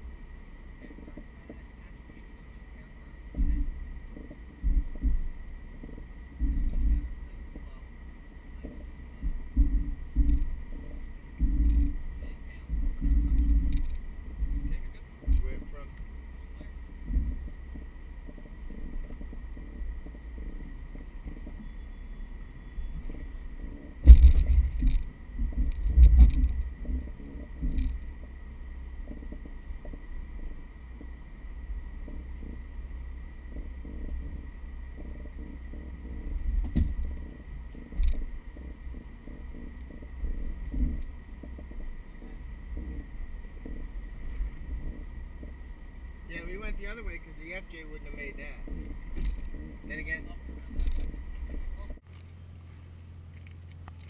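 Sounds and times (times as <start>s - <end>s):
vehicle low rumble: 0.0s - 54.0s
heavy thumps: 3.3s - 7.2s, 8.6s - 21.6s, 22.9s - 28.4s, 33.4s - 52.0s.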